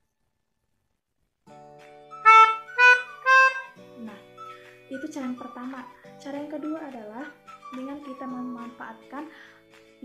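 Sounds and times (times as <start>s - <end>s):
melodica notes: 2.1s - 5.8s.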